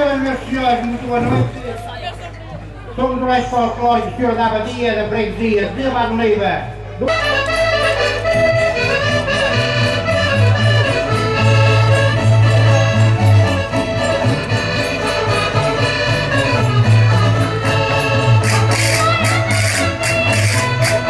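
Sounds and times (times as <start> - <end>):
folk dance band with accordion: 6.8 - 21.0.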